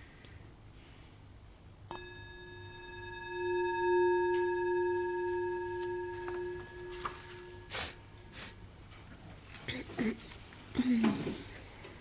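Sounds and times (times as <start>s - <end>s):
singing bowl ringing: 1.9s - 8.8s.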